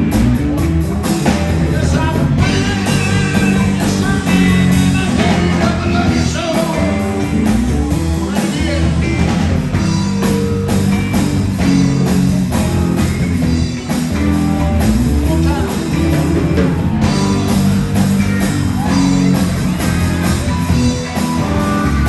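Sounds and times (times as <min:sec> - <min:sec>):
drum kit steady beat: 0:00.0 - 0:22.0
electric bass: 0:00.0 - 0:22.0
electric guitars: 0:00.0 - 0:22.0.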